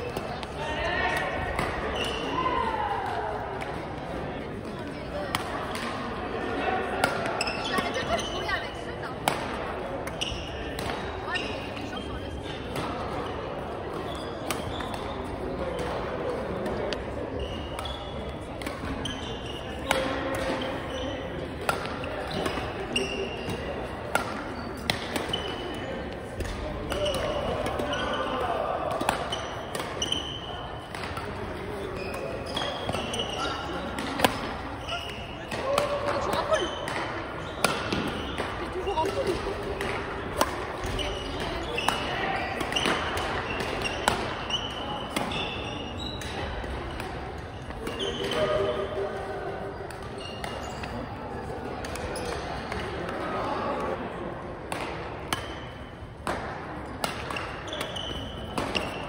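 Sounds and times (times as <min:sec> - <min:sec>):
people chatting: 0:00.0 - 0:55.5
sneakers squeaking on floor: 0:01.6 - 0:02.6, 0:07.0 - 0:09.1, 0:10.0 - 0:15.9, 0:16.8 - 0:51.2, 0:52.0 - 0:52.8, 0:57.0 - 0:59.0
racket hitting shuttlecock: 0:09.2 - 0:11.0, 0:14.4 - 0:15.1, 0:17.8 - 0:20.9, 0:21.6 - 0:48.6, 0:54.7 - 0:59.0.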